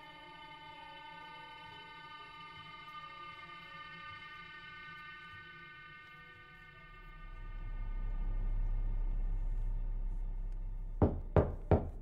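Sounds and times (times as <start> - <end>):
loud knocks on wooden door: 11.0 - 12.0.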